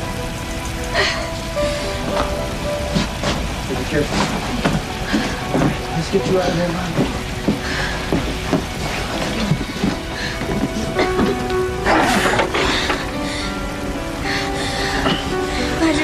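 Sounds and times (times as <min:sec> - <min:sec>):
dramatic music with held chords: 0:00.0 - 0:16.0
rain-like hiss and crackle: 0:00.0 - 0:16.0
scattered knocks: 0:02.0 - 0:13.3.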